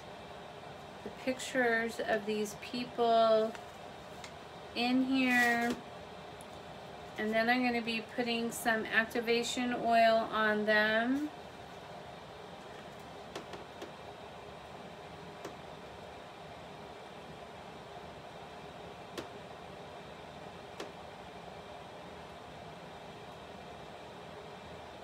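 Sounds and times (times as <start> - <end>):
steady background hiss: 0.0 - 25.0.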